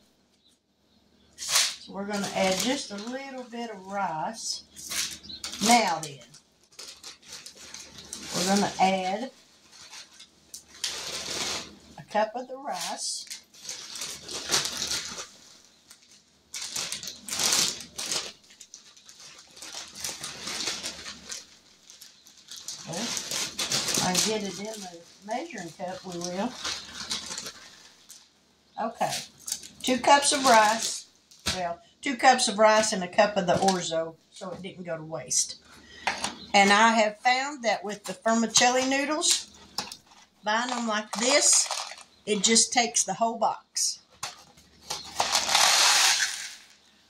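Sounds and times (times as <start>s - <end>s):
rice rustling in plastic bag: 1.4s - 31.7s, 38.2s - 42.2s, 44.2s - 46.9s
dry pasta pouring into bowl: 45.2s - 46.8s.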